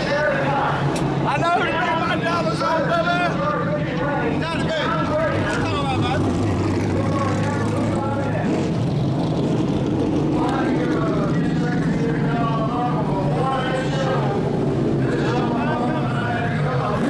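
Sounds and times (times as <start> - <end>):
indistinct voices talking: 0.0 - 17.0
low engine hum: 0.0 - 17.0.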